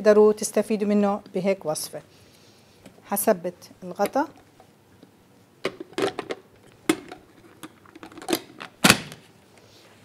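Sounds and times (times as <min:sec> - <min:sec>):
plastic lid snapping shut: 0:05.7 - 0:09.2.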